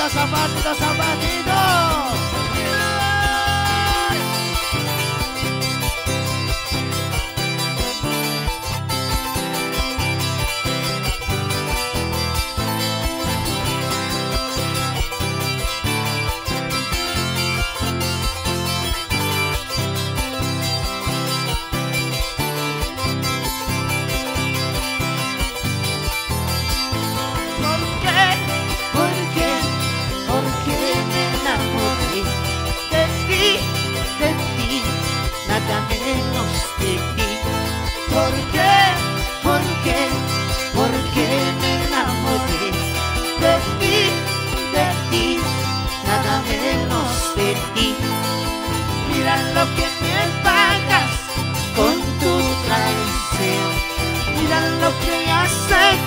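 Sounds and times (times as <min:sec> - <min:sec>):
wavering higher melody line: 0:00.0 - 0:10.3, 0:26.7 - 0:56.0
steady beat and bass line: 0:00.0 - 0:22.4
charango strummed strings: 0:00.0 - 0:56.0.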